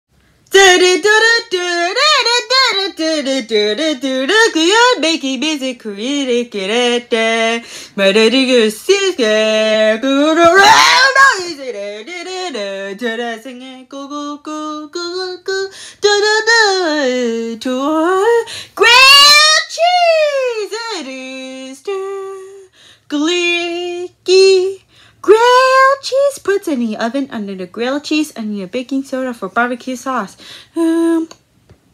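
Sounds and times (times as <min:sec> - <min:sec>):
person singing unaccompanied: 0:00.5 - 0:26.6.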